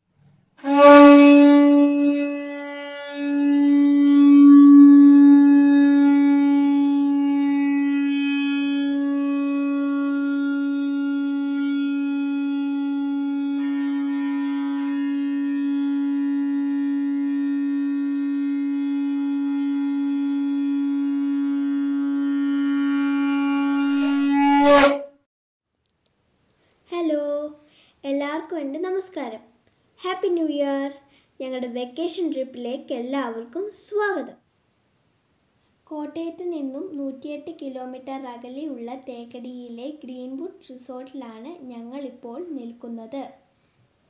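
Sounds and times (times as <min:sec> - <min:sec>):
horn sounding long steady note: 0:00.6 - 0:25.3.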